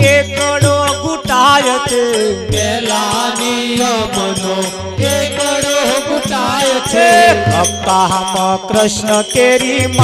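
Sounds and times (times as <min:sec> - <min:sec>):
harmonium holding steady notes: 0:00.0 - 0:10.0
rattling percussion: 0:00.0 - 0:10.0.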